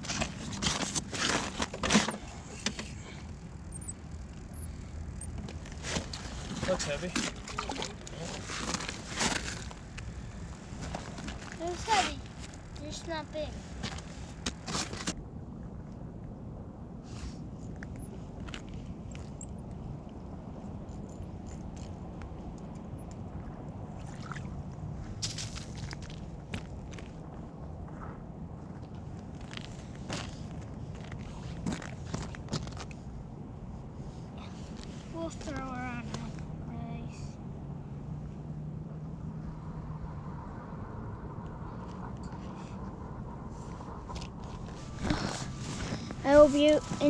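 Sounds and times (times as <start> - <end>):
low background rumble: 0.0 - 47.0
person speaking: 45.0 - 47.0.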